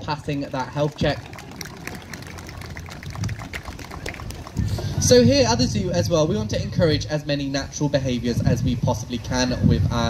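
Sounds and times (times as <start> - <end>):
scattered hand claps: 0.5 - 5.0.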